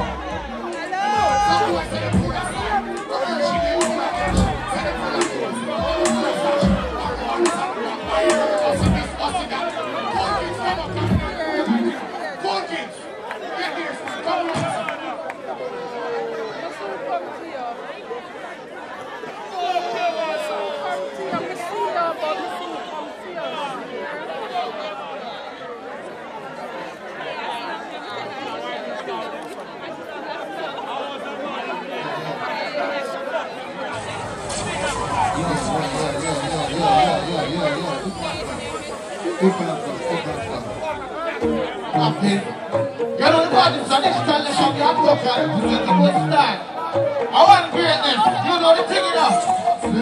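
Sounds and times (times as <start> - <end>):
heavy bass beat: 0.0 - 11.4, 34.0 - 42.0
performer's voice through pa: 0.0 - 12.0, 34.0 - 50.0
other voices: 0.0 - 15.2.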